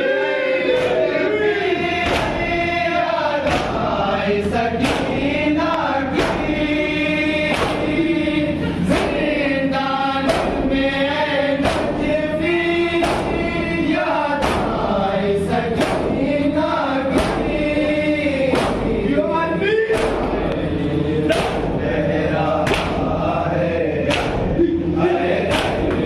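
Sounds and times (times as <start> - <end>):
men chanting a lament: 0.0 - 26.0
chest beating slaps: 2.0 - 2.6, 3.4 - 4.0, 4.8 - 5.3, 6.1 - 6.7, 7.5 - 8.1, 8.9 - 9.3, 10.3 - 10.8, 11.6 - 12.2, 13.0 - 13.6, 14.4 - 14.9, 15.8 - 16.3, 17.1 - 17.7, 18.5 - 19.0, 19.9 - 20.4, 21.3 - 21.8, 22.6 - 23.2, 24.1 - 24.6, 25.4 - 26.0.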